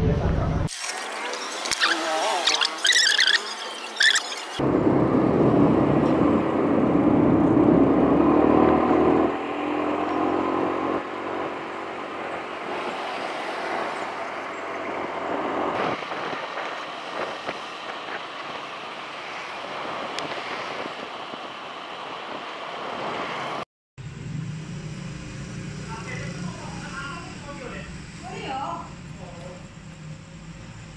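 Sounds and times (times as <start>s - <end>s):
rush of road traffic: 0.0s - 30.9s
engine running close by: 4.6s - 21.4s, 23.3s - 30.9s.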